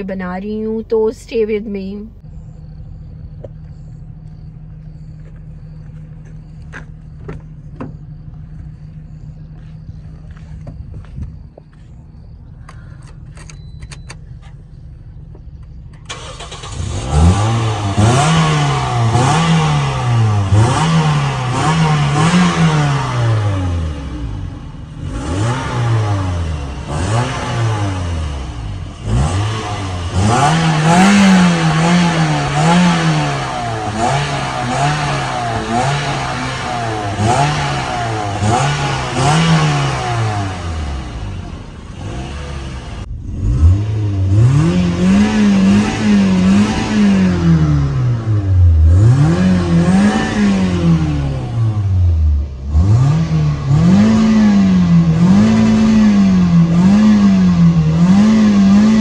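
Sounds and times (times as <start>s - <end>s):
car engine revving: 14.2s - 59.0s.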